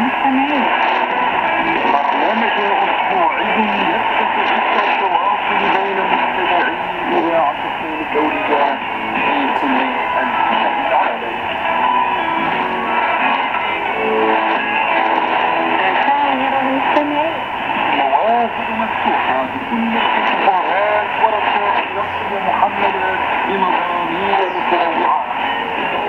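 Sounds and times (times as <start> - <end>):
radio static noise: 0.0 - 26.0
thin music over radio speaker: 0.0 - 26.0.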